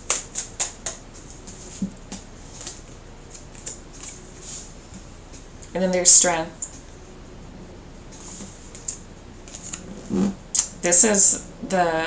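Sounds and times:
cards shuffled by hand: 0.1 - 4.2, 8.2 - 10.4.

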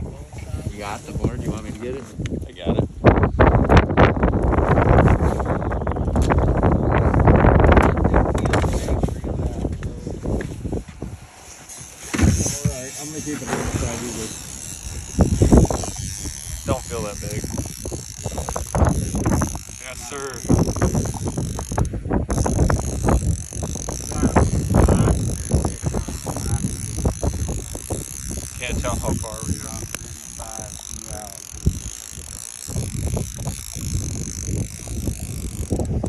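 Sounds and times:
wind buffeting microphone: 0.0 - 36.0
fishing reel clicking: 13.0 - 36.0.

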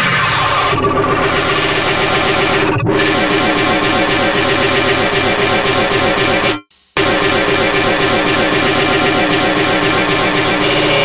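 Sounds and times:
electronic noise music: 0.0 - 11.0.

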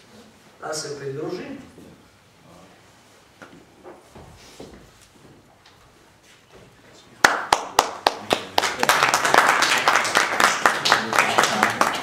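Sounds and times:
audience clapping: 7.2 - 12.0.

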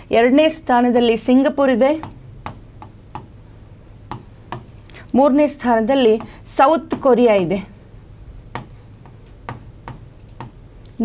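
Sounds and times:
pen tapping on screen: 1.9 - 3.4, 4.1 - 4.8, 6.1 - 7.5, 8.5 - 10.6
pen scratching on screen: 1.9 - 4.8, 6.1 - 10.6.

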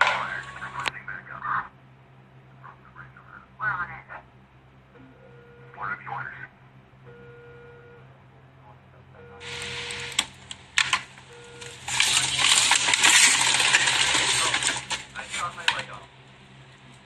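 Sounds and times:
frozen plastic bags rustling: 9.4 - 10.2, 11.6 - 15.8.

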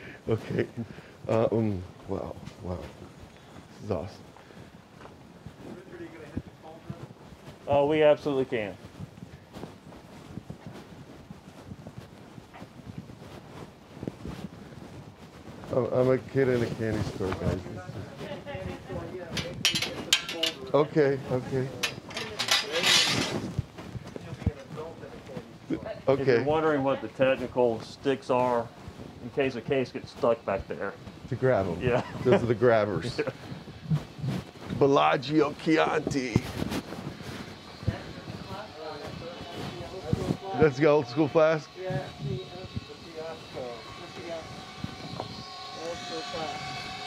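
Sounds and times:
faint voices: 15.7 - 47.0
person laughing: 31.8 - 32.5
machine hum: 33.0 - 47.0.

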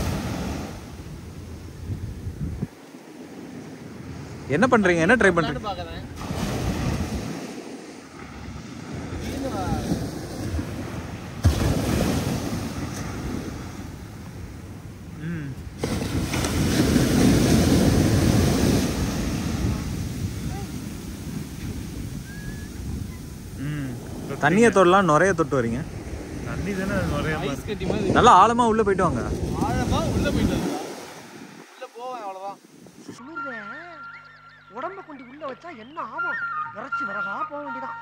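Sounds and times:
ocean surf breaking on beach: 0.0 - 33.2.

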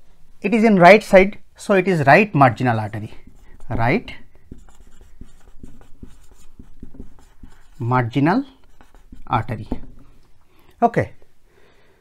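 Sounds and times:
marker writing on whiteboard: 2.6 - 10.4.

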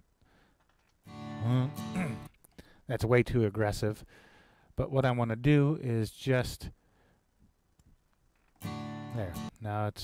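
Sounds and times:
acoustic guitar chord ringing: 1.1 - 2.3, 8.6 - 9.5.

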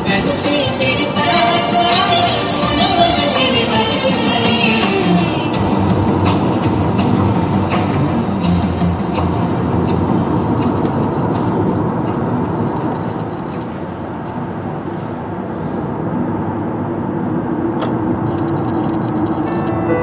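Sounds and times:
car road and engine noise: 0.0 - 20.0.

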